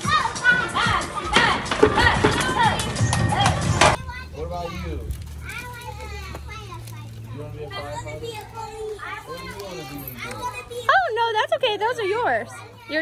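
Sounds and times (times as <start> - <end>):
children chattering and calling out: 0.0 - 13.0.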